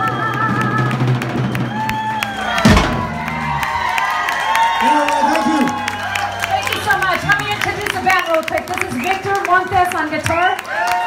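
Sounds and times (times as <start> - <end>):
live band playing: 0.0 - 10.2
loud low thud: 2.4 - 3.9.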